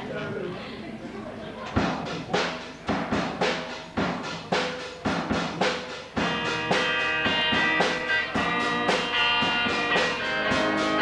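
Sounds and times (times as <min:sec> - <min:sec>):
drum kit steady beat: 0:01.7 - 0:11.0.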